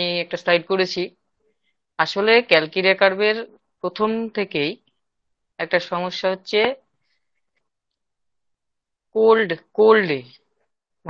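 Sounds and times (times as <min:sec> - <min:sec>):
person lecturing over video call: 0:00.0 - 0:11.0.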